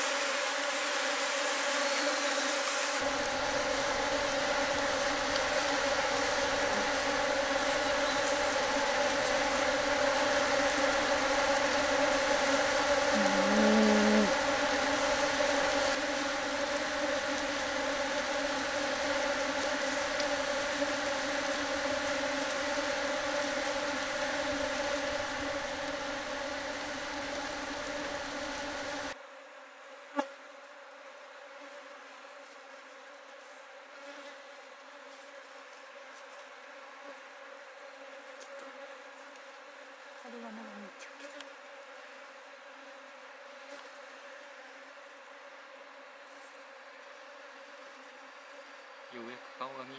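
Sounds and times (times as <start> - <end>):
bees buzzing loudly: 0.0 - 49.9.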